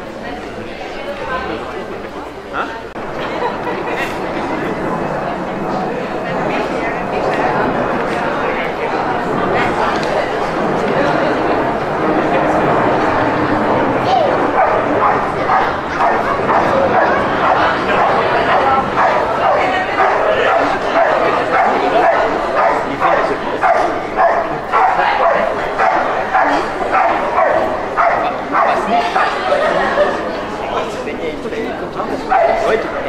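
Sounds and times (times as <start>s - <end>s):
dog barking: 14.5s - 29.4s, 32.3s - 32.8s.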